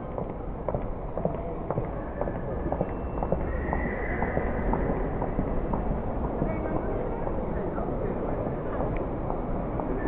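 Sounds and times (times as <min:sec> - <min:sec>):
hard-soled footsteps on pavement: 0:00.0 - 0:06.9.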